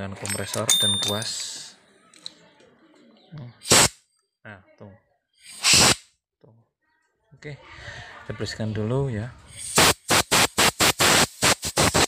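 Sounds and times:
compressed air blast: 0:03.6 - 0:03.9, 0:05.4 - 0:06.1, 0:09.6 - 0:12.0.

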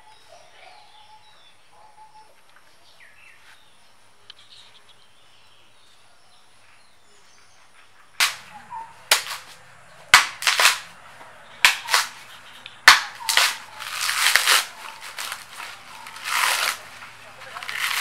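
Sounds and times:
knife chopping coconut husk: 0:08.2 - 0:10.9, 0:11.6 - 0:18.0
husk fibres tearing: 0:08.2 - 0:11.0, 0:11.6 - 0:18.0.

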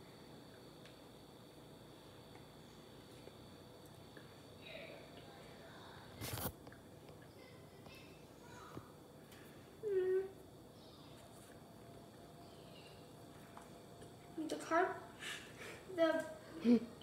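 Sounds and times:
child's voiced hum: 0:09.8 - 0:11.2.

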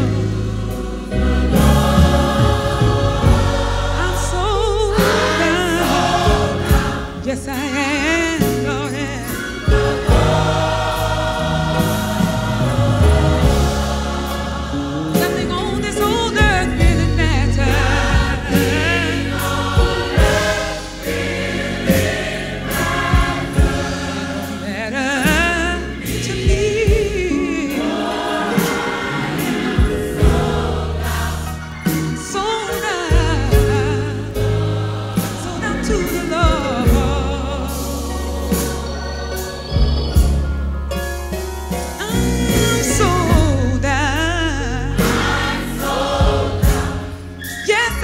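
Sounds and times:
gospel choir singing with band: 0:00.0 - 0:48.0.

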